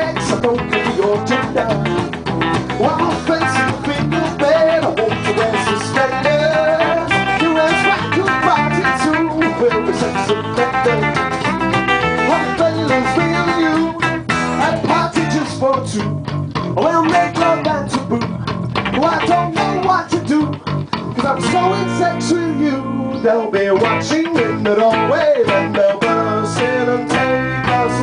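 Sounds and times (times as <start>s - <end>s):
acoustic guitar strumming: 0.0s - 28.0s
bass guitar: 0.0s - 28.0s
electric guitar: 0.0s - 28.0s.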